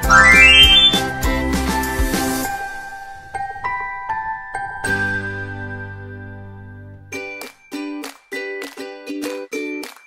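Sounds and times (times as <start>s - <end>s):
cheerful children's music: 0.0s - 1.0s
rising chime notes: 0.0s - 1.0s.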